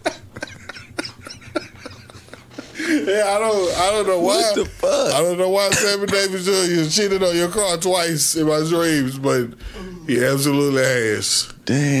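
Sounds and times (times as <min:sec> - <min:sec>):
men laughing quietly: 0:00.0 - 0:05.2.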